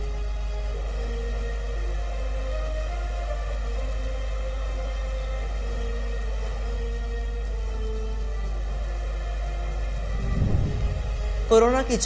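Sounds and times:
deep drone music: 0.0s - 12.0s.

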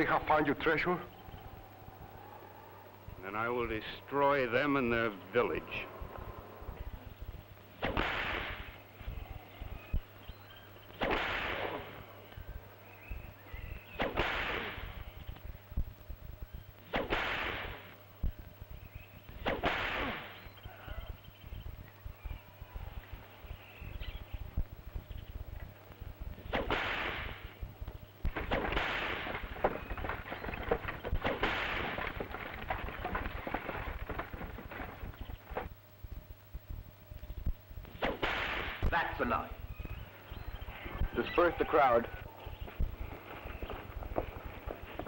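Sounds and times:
steady low hum: 0.0s - 45.0s
whip cracks: 7.8s - 8.8s, 11.0s - 12.0s, 14.0s - 15.0s, 16.9s - 17.9s, 19.4s - 20.4s, 26.5s - 27.5s, 28.4s - 29.5s, 31.2s - 32.0s, 38.0s - 39.1s.

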